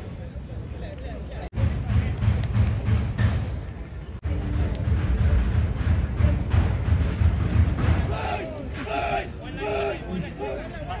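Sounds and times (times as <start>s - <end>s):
men shouting loudly: 8.0s - 11.0s.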